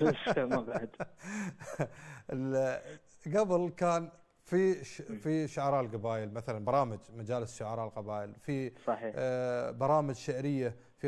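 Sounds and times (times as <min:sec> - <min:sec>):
man speaking: 0:00.0 - 0:01.1, 0:02.3 - 0:10.8.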